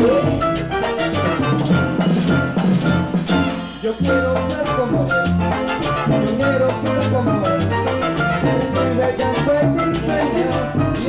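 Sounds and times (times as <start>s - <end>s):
drum kit and percussion: 0.0s - 11.0s
latin dance orchestra playing: 0.0s - 11.0s.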